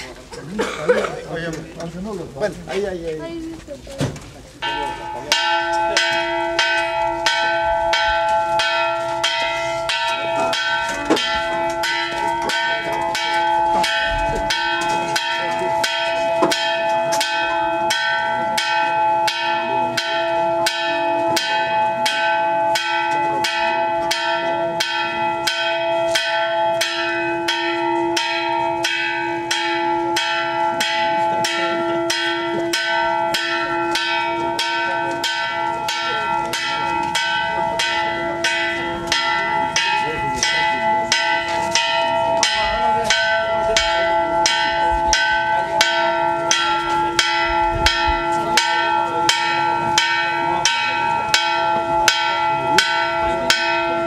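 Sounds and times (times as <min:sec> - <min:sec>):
bell struck rapidly: 0:04.6 - 0:54.0.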